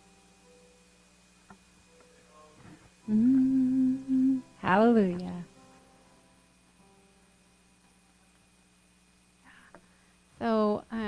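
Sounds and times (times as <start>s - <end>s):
keyboard chord: 1.9s - 5.8s
woman humming: 3.0s - 5.4s.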